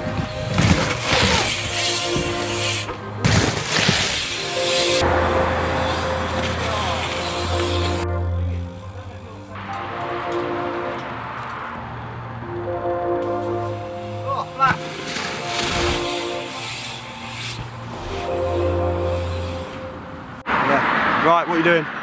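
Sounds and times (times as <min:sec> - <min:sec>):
music with held chords: 0:04.3 - 0:20.4.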